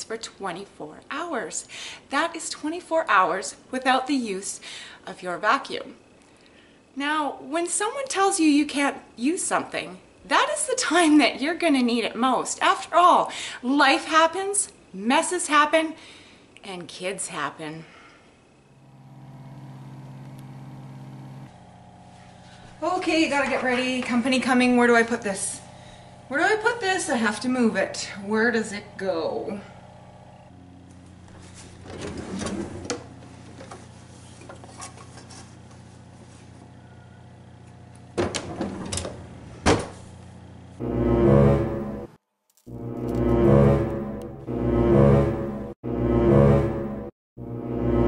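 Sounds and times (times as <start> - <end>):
faint hum: 0.1 - 38.1
low-pitched hum: 18.8 - 31.9, 40.8 - 48.0
pots rattling in sliding drawer: 31.9 - 33.0.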